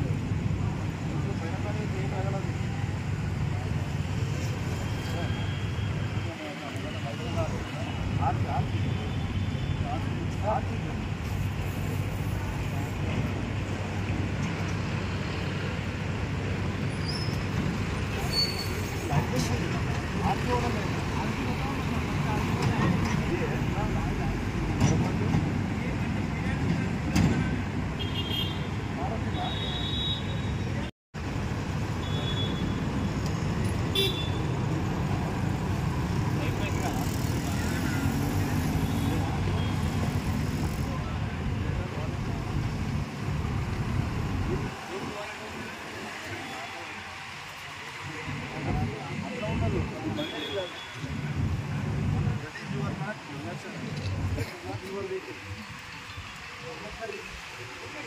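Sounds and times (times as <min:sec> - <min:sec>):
people talking: 0:06.2 - 0:09.1, 0:19.0 - 0:27.2, 0:44.3 - 0:58.0
motorcycles and cars passing: 0:32.9 - 0:50.1
vehicle horn toots: 0:33.9 - 0:34.4.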